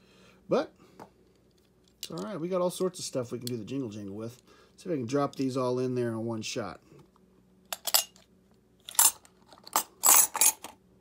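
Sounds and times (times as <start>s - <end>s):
metal bars clinking in plastic tube: 8.9s - 10.7s.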